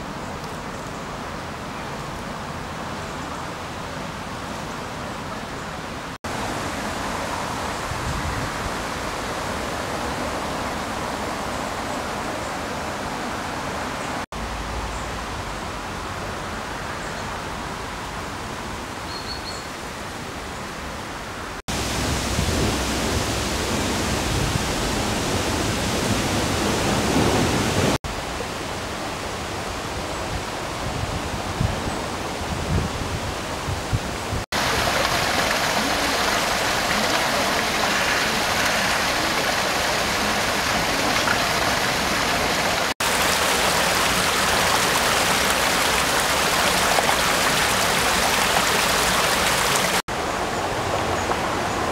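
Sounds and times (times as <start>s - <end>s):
steady hiss-like park ambience: 0.0s - 51.9s.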